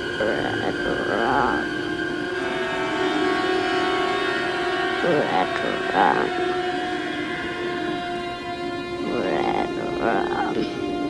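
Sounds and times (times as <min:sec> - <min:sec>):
film score drone chord: 0:00.0 - 0:11.0.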